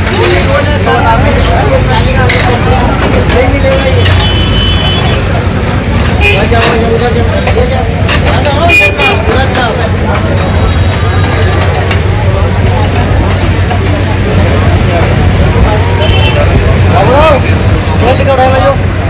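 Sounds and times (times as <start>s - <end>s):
metal skewers clicking: 0.0s - 14.8s
traffic: 0.0s - 19.0s.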